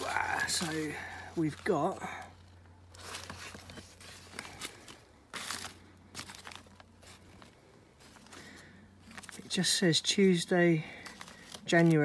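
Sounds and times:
newspaper rustling and crinkling: 0.0 - 9.7, 10.8 - 12.0.

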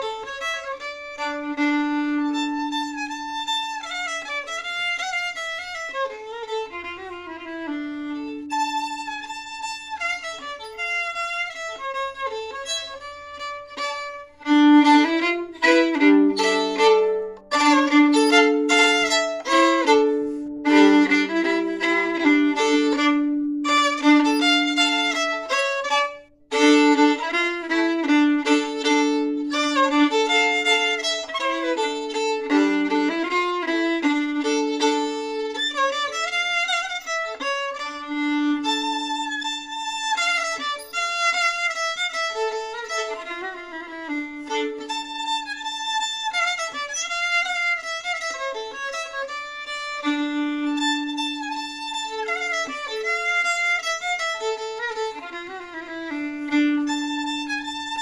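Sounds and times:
solo fiddle playing a folk tune: 0.0 - 58.0.

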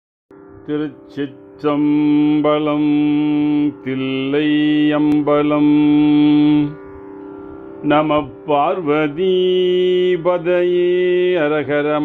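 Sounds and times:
steady drone: 0.6 - 11.4
man chanting: 0.7 - 6.8, 7.8 - 12.0.

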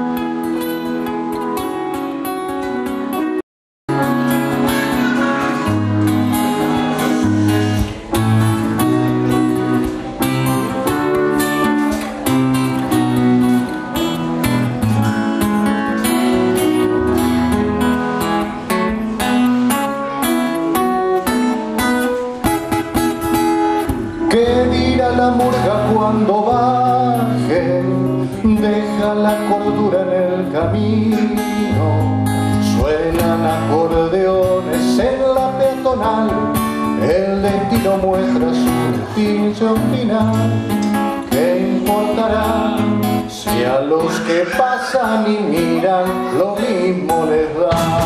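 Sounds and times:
acoustic guitar strumming: 0.0 - 48.0
man singing: 24.0 - 48.0.

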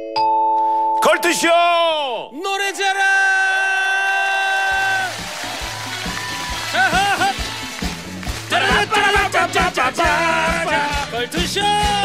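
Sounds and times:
rhythmic beat with bass pulse: 5.2 - 12.0.

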